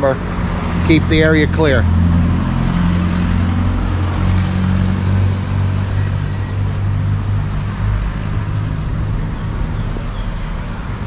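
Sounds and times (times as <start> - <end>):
street traffic rush: 0.0 - 11.0
vehicle engine droning: 0.0 - 11.0.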